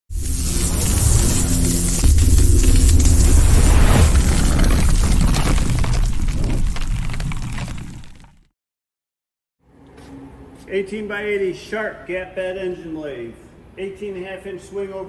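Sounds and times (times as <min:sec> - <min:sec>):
cinematic intro music: 0:00.1 - 0:06.6
deep booms: 0:00.9 - 0:08.2.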